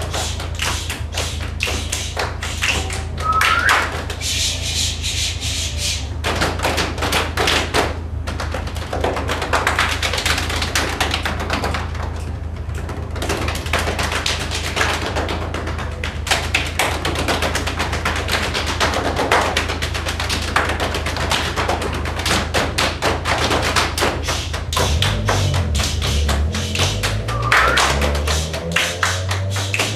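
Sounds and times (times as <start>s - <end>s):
hand claps and body slaps: 0.0s - 4.4s, 6.2s - 12.2s, 12.8s - 29.9s.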